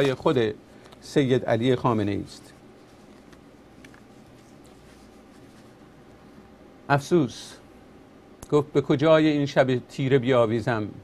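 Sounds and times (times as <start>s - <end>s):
man talking: 0.0s - 2.6s, 6.9s - 7.7s, 8.4s - 11.0s.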